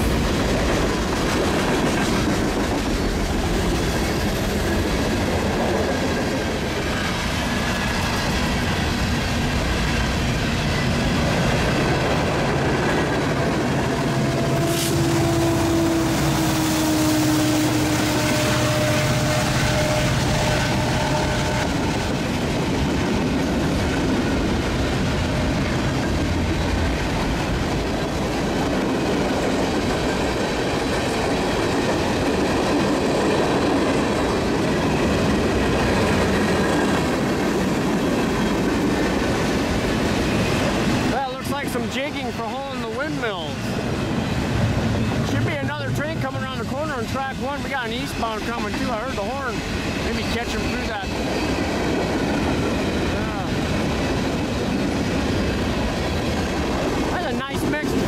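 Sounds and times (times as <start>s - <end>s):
train wheels rumbling on rails: 0.0s - 58.0s.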